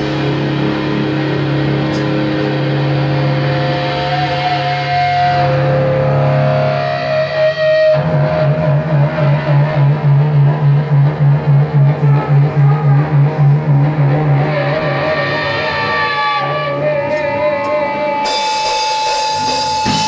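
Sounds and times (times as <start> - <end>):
electric guitar through amplifier: 0.0 - 20.0.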